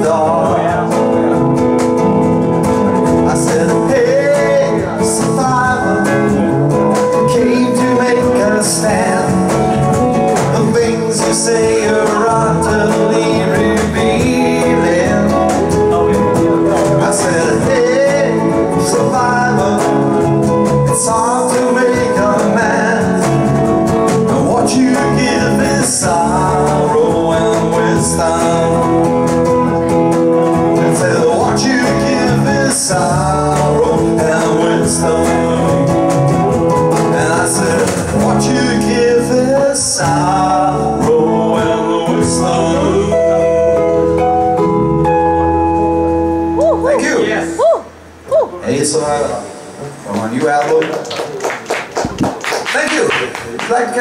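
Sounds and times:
cajon: 0.0s - 43.1s, 49.9s - 54.0s
bass guitar: 0.0s - 50.6s
guitar: 0.0s - 54.0s.

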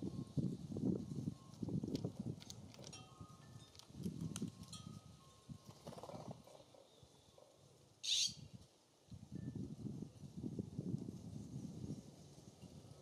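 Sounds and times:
harsh raspy bird call: 8.0s - 8.4s.

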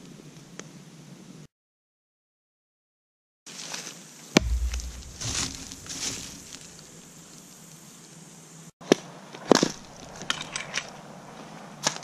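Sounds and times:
outdoor background hiss: 0.0s - 1.5s, 3.5s - 11.8s
sharp knock: 4.4s - 6.8s.

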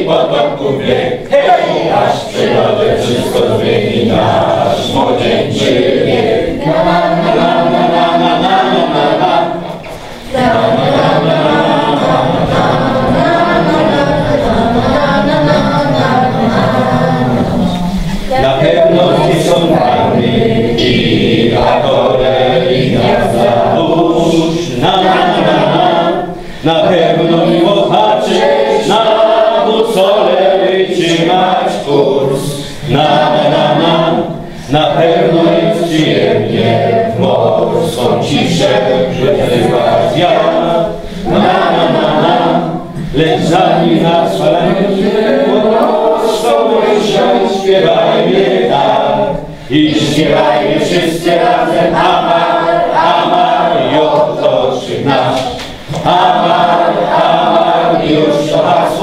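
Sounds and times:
roomful of people singing: 0.0s - 59.0s.

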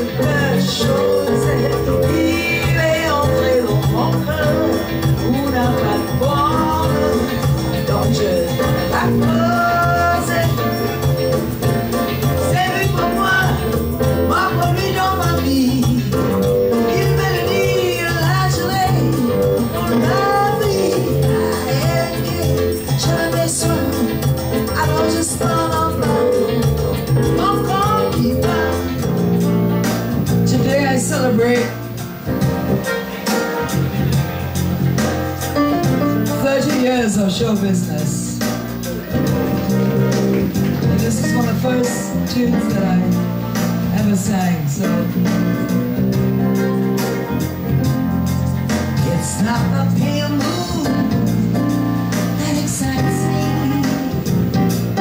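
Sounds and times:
woman singing into microphone: 0.0s - 11.4s, 12.2s - 29.3s, 30.3s - 31.8s, 36.3s - 38.4s, 40.8s - 45.7s, 48.9s - 55.0s
electric bass guitar: 0.0s - 55.0s
electric keyboard: 0.0s - 55.0s
jazz band playing: 0.0s - 55.0s.

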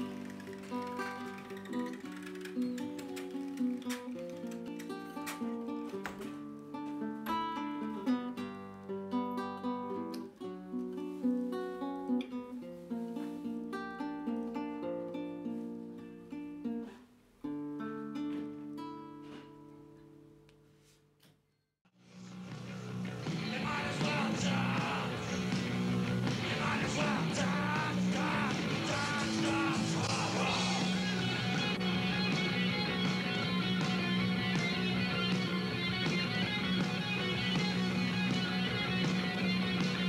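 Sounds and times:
classical guitar fingerstyle: 0.0s - 20.5s
punk rock band playing: 22.3s - 40.0s
man yelling vocals: 23.5s - 25.6s, 26.4s - 31.5s.

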